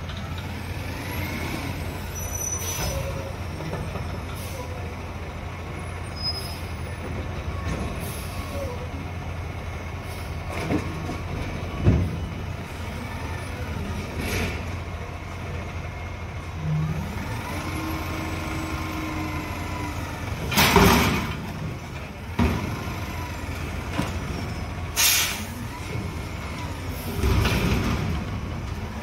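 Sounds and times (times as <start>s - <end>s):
diesel truck engine running: 0.0s - 29.0s.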